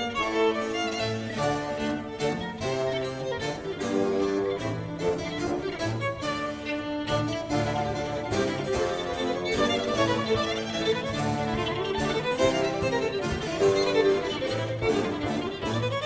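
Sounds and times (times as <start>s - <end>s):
baroque violin playing fast: 0.0s - 16.0s
harpsichord: 0.0s - 16.0s.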